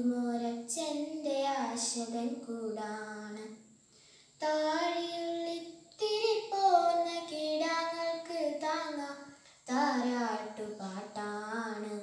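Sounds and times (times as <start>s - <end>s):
girl singing unaccompanied: 0.0s - 3.7s, 4.3s - 12.0s.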